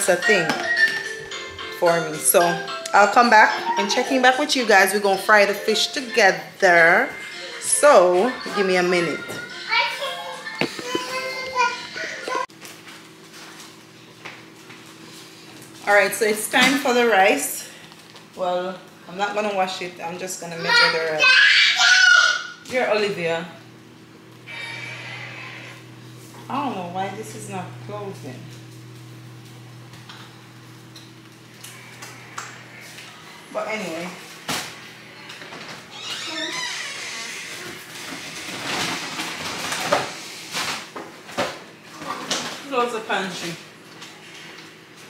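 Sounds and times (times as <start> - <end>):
children talking and playing: 7.1 - 12.5, 20.5 - 22.6, 35.3 - 37.6
steady low hum: 22.6 - 36.0.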